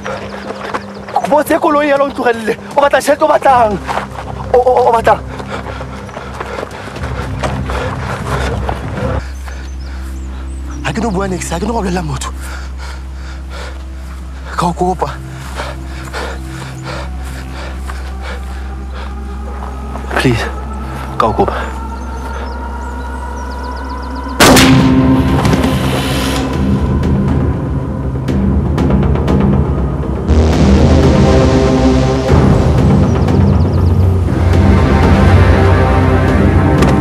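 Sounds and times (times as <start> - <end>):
low drone of held tones: 15.2 - 37.0
handgun shot: 24.4 - 24.9.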